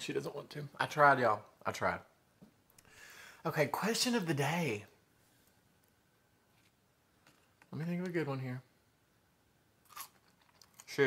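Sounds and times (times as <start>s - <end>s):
french fry crunch: 9.8s - 11.0s
faint chewing: 9.9s - 11.0s.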